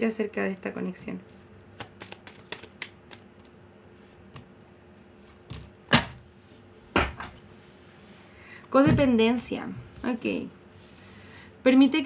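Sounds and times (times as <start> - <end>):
cards being shuffled: 1.7 - 3.6.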